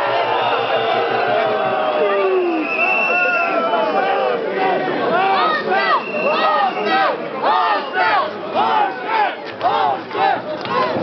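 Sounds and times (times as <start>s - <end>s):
crowd chanting rhythmically: 4.5s - 11.0s.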